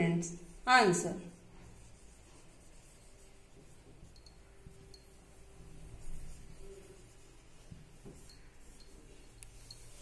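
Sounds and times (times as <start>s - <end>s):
marker pen writing on whiteboard: 0.2s - 10.0s.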